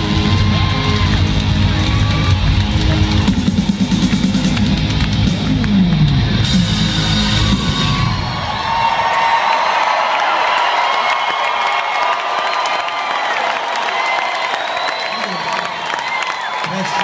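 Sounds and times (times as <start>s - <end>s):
rock band music: 0.0s - 8.8s
crowd cheering and whooping: 0.0s - 17.0s.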